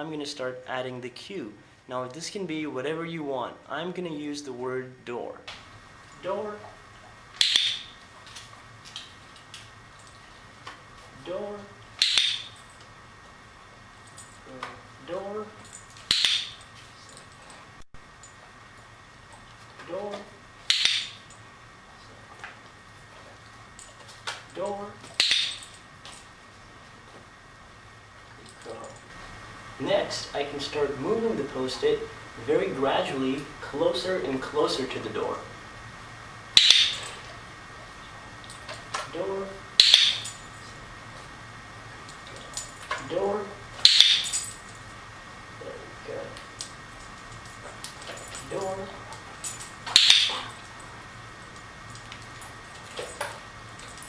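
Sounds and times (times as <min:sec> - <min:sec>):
person speaking: 0:00.0 - 0:05.5, 0:11.1 - 0:11.8, 0:24.5 - 0:25.1, 0:29.8 - 0:35.6, 0:42.9 - 0:43.8, 0:48.4 - 0:49.3
steady low hiss: 0:00.0 - 0:54.0.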